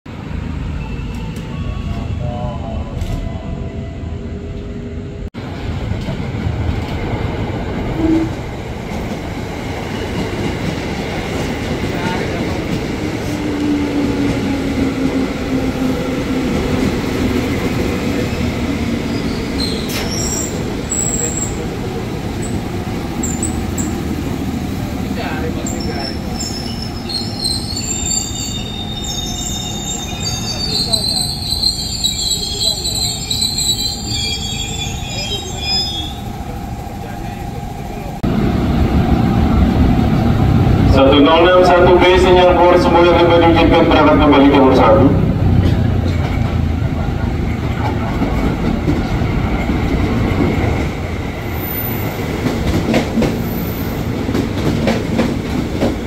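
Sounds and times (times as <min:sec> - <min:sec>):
low train whine: 0:00.1 - 0:56.0
rumble of train wheels on rail: 0:02.9 - 0:56.0
wheel squeal: 0:19.1 - 0:21.6, 0:25.7 - 0:36.6.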